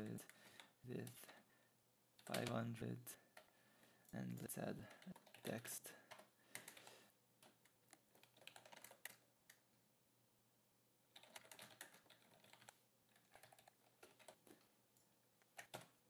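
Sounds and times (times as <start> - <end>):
typing on a keyboard: 2.2 - 2.6, 4.8 - 9.6, 11.1 - 14.6, 15.4 - 16.0.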